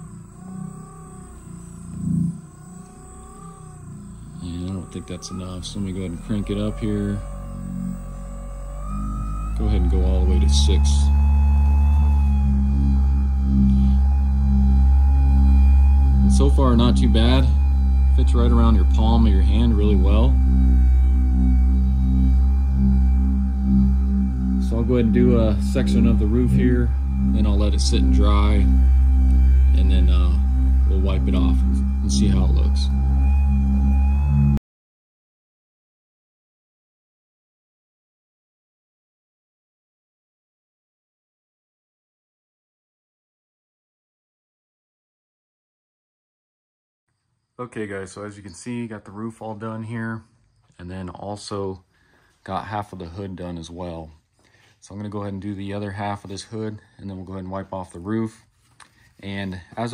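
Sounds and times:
polisher motor whining: 0.0s - 34.6s.

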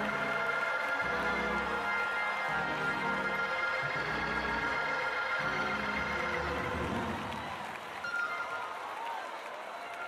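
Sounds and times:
church music with low bass: 0.0s - 7.3s
congregation applauding and cheering: 0.0s - 10.0s.

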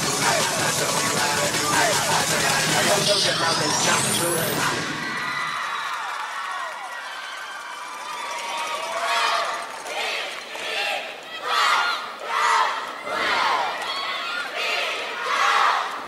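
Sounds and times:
arena crowd cheering: 0.0s - 16.0s
cheerleaders shouting in unison: 9.9s - 16.0s.

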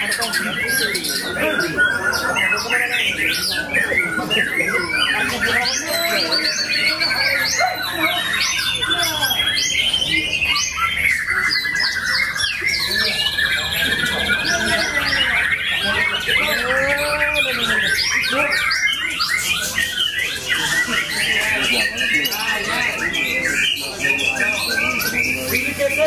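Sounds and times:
other caged songbirds singing: 0.0s - 26.0s.

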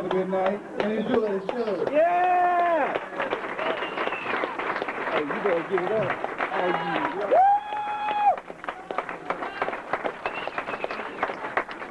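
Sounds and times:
audience applauding: 0.0s - 11.9s.

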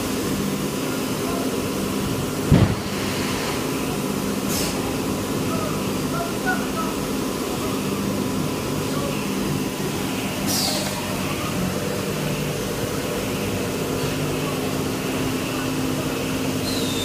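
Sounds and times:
machinery drone: 0.0s - 17.0s
short high hiss: 10.4s - 11.0s.

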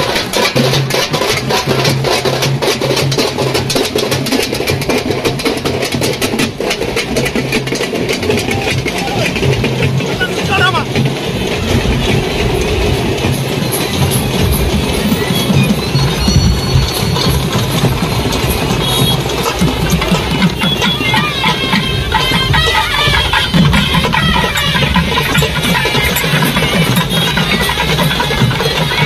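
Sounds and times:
crowd voices hubbub: 0.0s - 29.0s
drums beaten rapidly: 0.0s - 29.0s.

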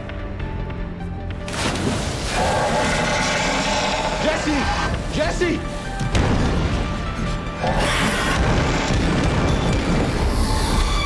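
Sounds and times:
water splashing and churning: 1.4s - 5.1s.

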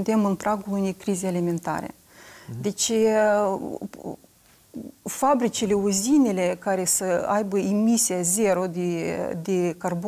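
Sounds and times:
woman's hesitation sounds: 2.5s - 2.8s.

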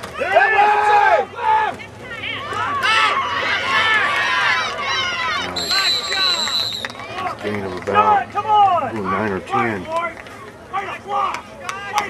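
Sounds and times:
people shouting: 0.0s - 7.4s, 8.0s - 9.2s
referee whistle blast: 5.5s - 7.1s.

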